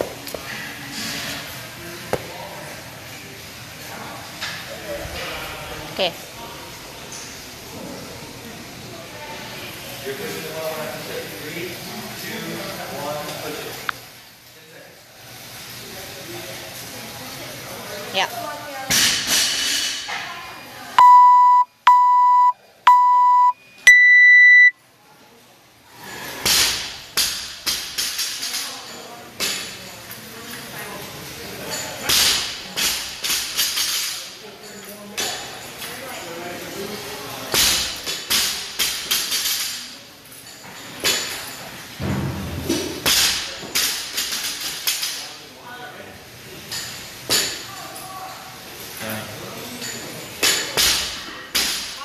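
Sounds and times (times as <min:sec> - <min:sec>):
timer beeps: 0:21.0 - 0:24.8.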